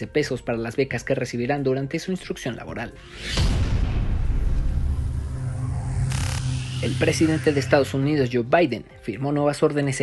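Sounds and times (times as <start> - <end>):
rising swoosh: 3.0 - 8.3
deep low rumble: 3.5 - 8.1.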